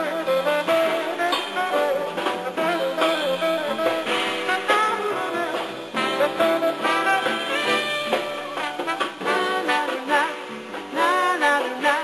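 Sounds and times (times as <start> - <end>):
jazz band playing: 0.0 - 12.0
saxophone solo: 0.0 - 12.0.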